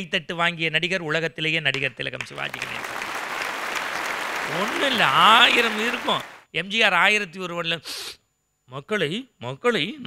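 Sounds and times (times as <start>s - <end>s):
audience applauding: 2.3s - 6.4s
man's voice: 4.5s - 6.8s.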